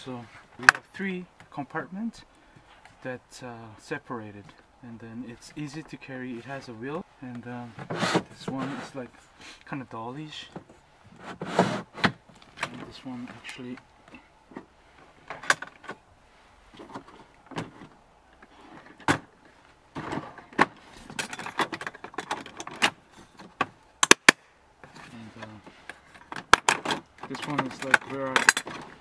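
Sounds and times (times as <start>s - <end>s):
plastic toolbox clicks and knocks: 19.9s - 24.4s, 26.2s - 29.0s
sharp plastic snaps: 23.6s - 24.5s.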